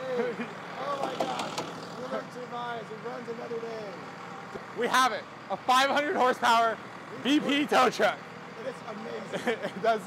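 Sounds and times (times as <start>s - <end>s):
men laughing and exclaiming: 0.0s - 1.5s, 4.6s - 10.0s.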